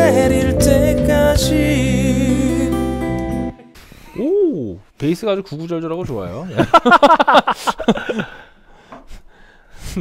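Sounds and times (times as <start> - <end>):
men laughing heartily: 6.5 - 8.6.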